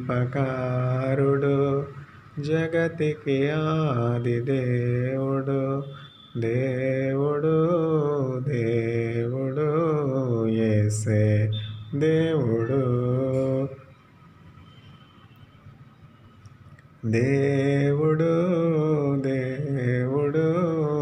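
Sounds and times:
man chanting a hymn: 0.0 - 13.8, 17.0 - 21.0.

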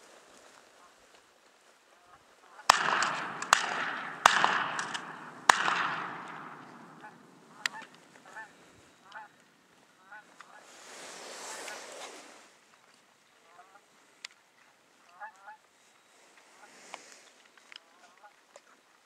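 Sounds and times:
geese honking: 2.6 - 9.4
shotgun bangs echoing: 2.7 - 8.4.

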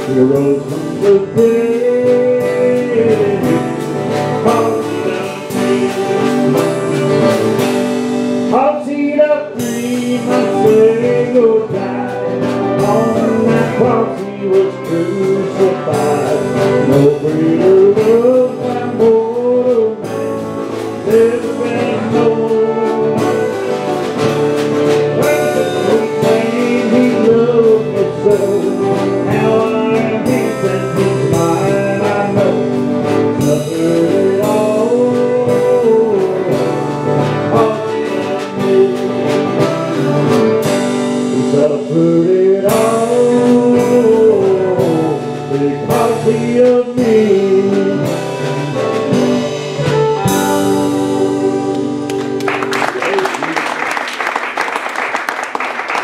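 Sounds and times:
drum kit steady beat: 0.0 - 53.5
country gospel band playing: 0.0 - 56.0
fiddle sliding melody: 10.0 - 19.0, 20.3 - 33.4.

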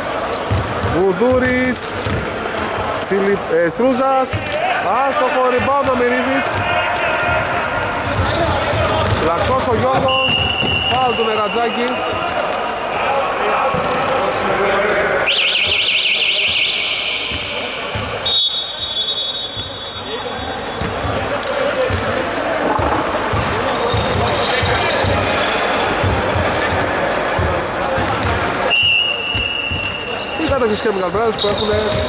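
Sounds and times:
players' voices echoing: 0.0 - 32.0
basketball bouncing on court: 0.4 - 2.9, 5.8 - 7.4, 8.0 - 11.2, 16.4 - 18.4, 19.4 - 25.4, 26.0 - 28.5, 29.3 - 32.0
referee whistle trill: 10.1 - 11.8, 15.2 - 20.8, 28.7 - 31.8.

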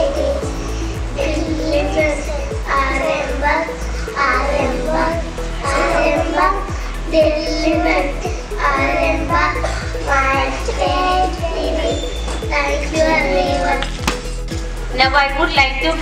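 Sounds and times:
children singing into microphones: 0.0 - 14.0
ticking beat: 0.0 - 16.0.

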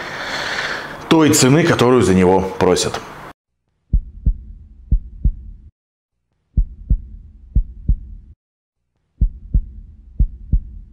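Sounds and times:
deep heartbeat-like thumps: 3.9 - 5.7, 6.6 - 8.4, 9.2 - 10.9
low hum: 3.9 - 5.7, 6.6 - 8.4, 9.2 - 10.9.

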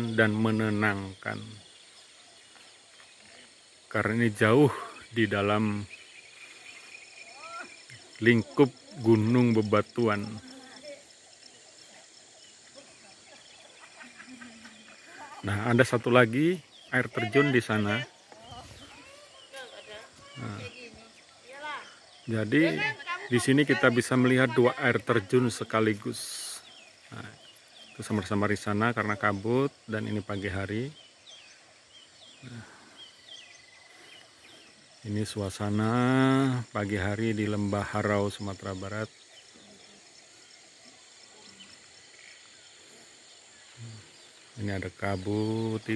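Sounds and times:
distant birds calling: 0.0 - 45.9
insects humming: 0.0 - 45.9.

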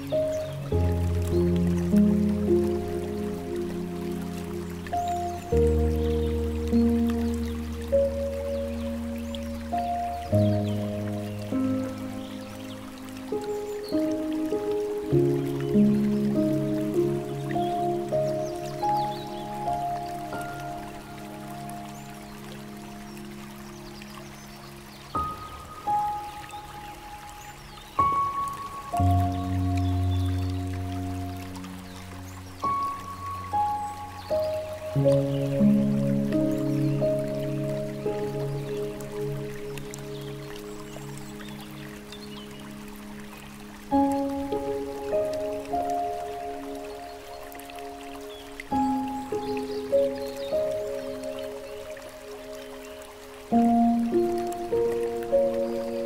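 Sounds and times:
slow gentle piano music: 0.0 - 56.0
trickling water: 0.0 - 56.0.

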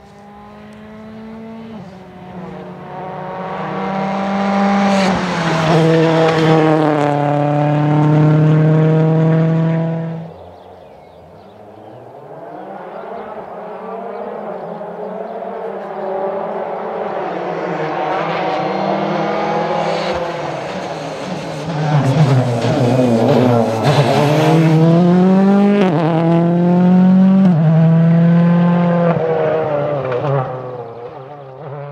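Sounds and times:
rally car engine passing: 0.0 - 31.9.

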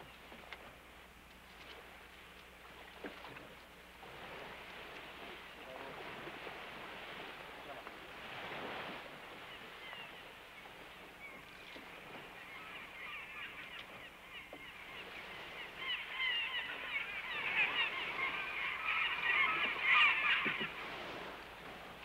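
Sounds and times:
gulls calling: 9.3 - 21.4.

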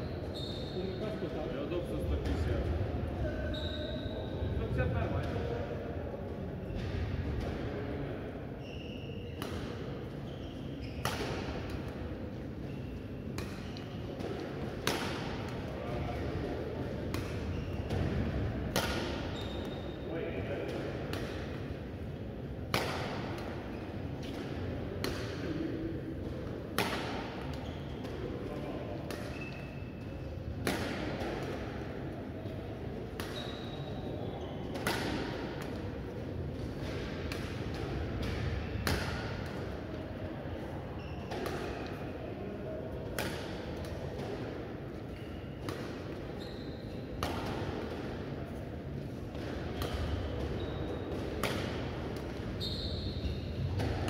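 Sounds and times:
shoe squeaks on court floor: 0.0 - 1.2, 3.4 - 4.4, 8.6 - 9.4, 10.2 - 11.1, 12.6 - 14.0, 17.4 - 17.9, 19.3 - 20.0, 27.6 - 28.0, 29.3 - 30.0, 33.3 - 34.7, 41.0 - 41.9, 45.1 - 45.6, 46.3 - 47.0, 50.0 - 51.1, 52.5 - 53.7
badminton rackets hitting shuttlecock: 9.4 - 9.9, 11.0 - 12.1, 13.4 - 15.7, 16.9 - 19.8, 20.7 - 21.6, 22.6 - 25.6, 26.2 - 28.2, 29.0 - 29.7, 30.6 - 31.7, 33.1 - 33.8, 34.7 - 36.0, 36.6 - 39.7, 41.3 - 42.0, 43.1 - 46.2, 47.2 - 48.3, 49.3 - 52.6, 53.7 - 54.0.

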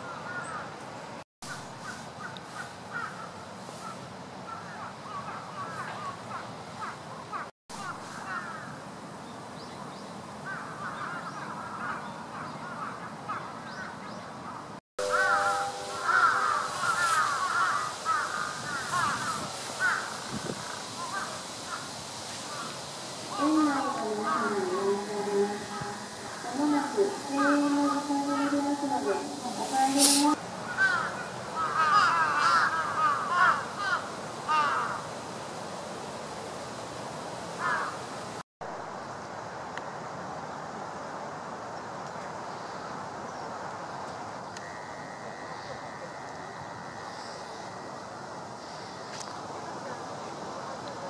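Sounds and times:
birds calling: 10.5 - 35.0.

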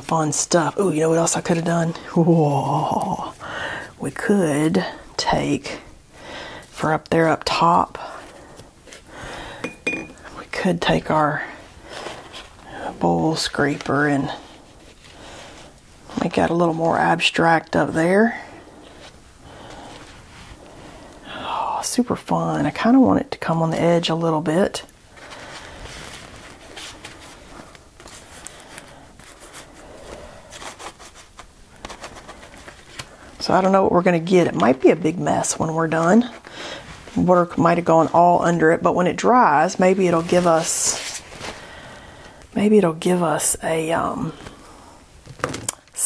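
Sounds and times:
paintbrush clinking on hard surface: 9.6 - 10.2
handling of art tools: 9.6 - 10.4.

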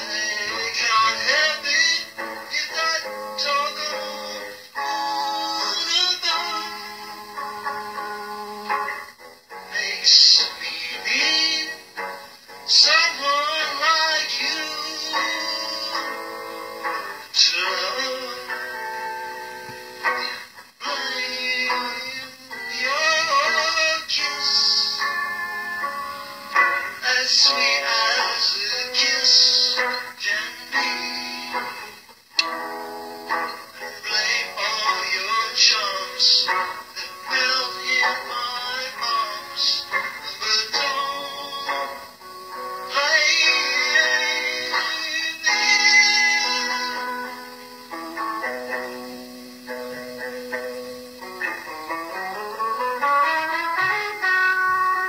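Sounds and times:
person singing with vibrato: 0.0 - 7.5, 9.6 - 32.7, 33.3 - 51.2
backing music: 0.0 - 55.0
instrumental accompaniment: 0.0 - 55.0.

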